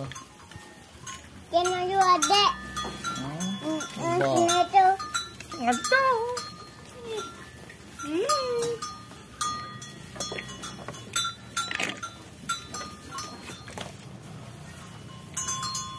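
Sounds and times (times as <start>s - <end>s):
cowbells clinking: 0.0s - 15.9s.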